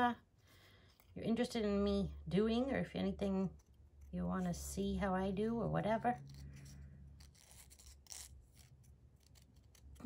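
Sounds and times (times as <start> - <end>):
scissors snipping paper: 6.1 - 10.0.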